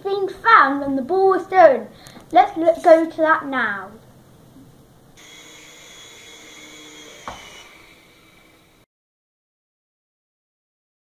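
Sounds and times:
toy helicopter motor whine: 5.2 - 8.9.

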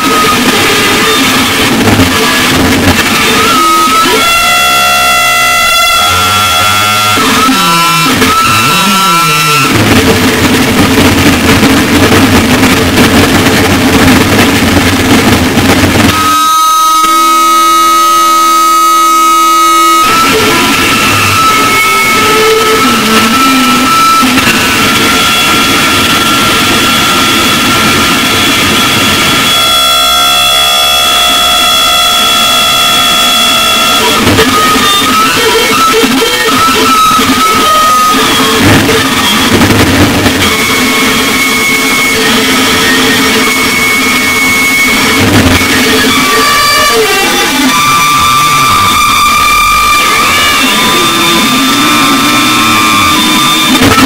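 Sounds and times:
distorted harsh noise: 0.0 - 54.0
high feedback whistles: 3.2 - 9.8, 16.1 - 39.6, 40.2 - 54.0.

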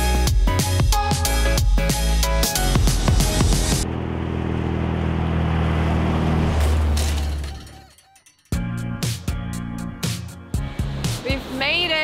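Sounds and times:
road noise: 2.2 - 7.9, 9.1 - 12.0
vehicle engine hum: 2.2 - 8.0.

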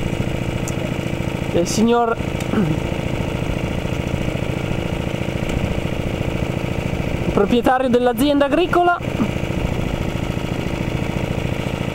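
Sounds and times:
small engine idling: 0.0 - 11.9.

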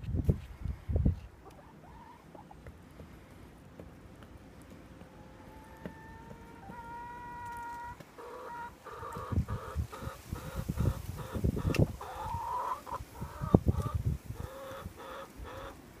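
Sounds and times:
hens clucking: 1.2 - 3.1, 4.9 - 15.9.

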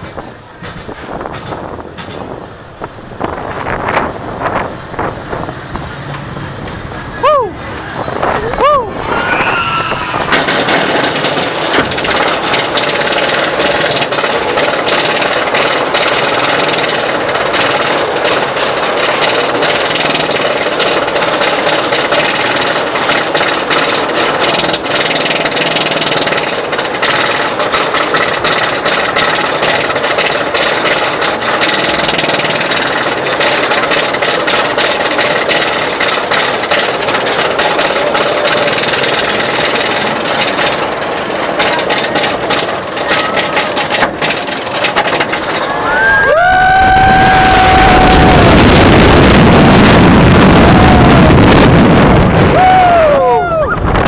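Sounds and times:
roller coaster chain clatter: 0.0 - 53.2.

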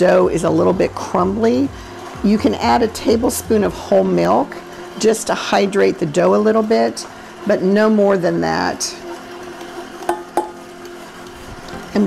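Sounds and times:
stand mixer humming: 0.0 - 12.0.

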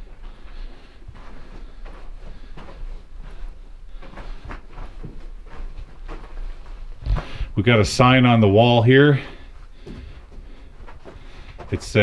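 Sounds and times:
footsteps crunching on gravel: 1.1 - 12.0.

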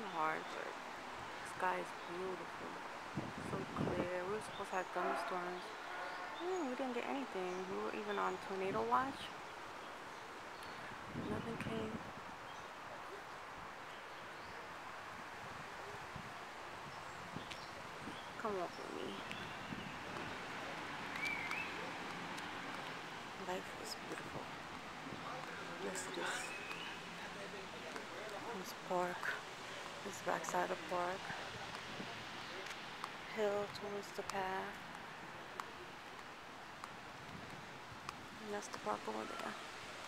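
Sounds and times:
distant traffic: 0.0 - 40.0
faint outdoor background hiss: 0.0 - 40.0
wind: 0.0 - 40.0.

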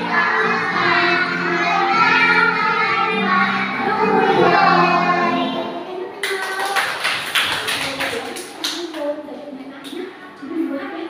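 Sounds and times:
children singing: 0.0 - 7.0
group clapping hands: 6.2 - 9.1.

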